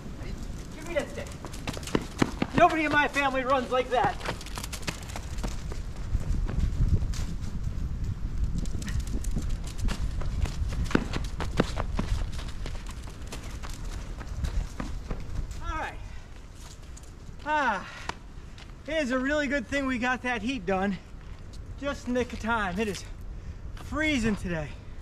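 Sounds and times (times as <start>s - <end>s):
running footsteps on asphalt: 0.0s - 25.0s
person speaking: 0.1s - 1.4s, 2.5s - 4.4s, 21.8s - 23.2s.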